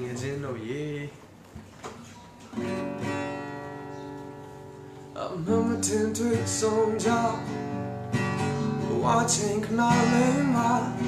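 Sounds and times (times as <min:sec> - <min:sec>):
guitar being handled: 0:01.1 - 0:05.2
acoustic guitar chord strummed: 0:02.5 - 0:11.0.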